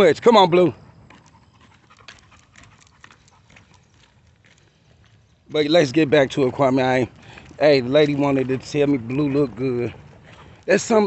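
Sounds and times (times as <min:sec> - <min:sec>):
dog claws ticking on asphalt: 0:01.0 - 0:11.0.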